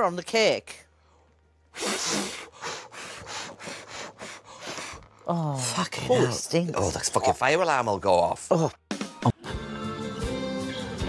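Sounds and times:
man blowing short hard puffs: 1.7 - 5.2.

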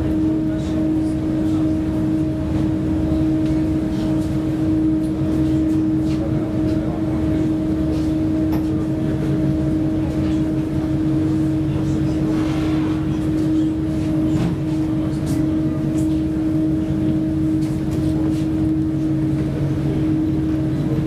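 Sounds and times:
ferry engines droning: 0.0 - 21.0.

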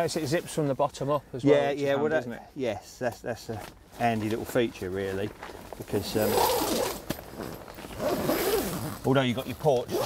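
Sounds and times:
zip being pulled: 6.0 - 7.1, 7.8 - 9.2.

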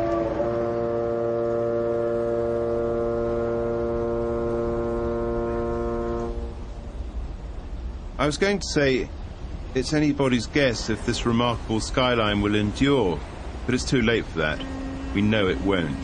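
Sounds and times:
ship's horn blast: 0.0 - 7.0, 14.2 - 16.0.

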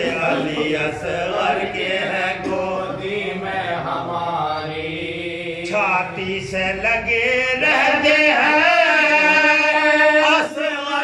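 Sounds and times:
men chanting without instruments: 0.0 - 11.0.

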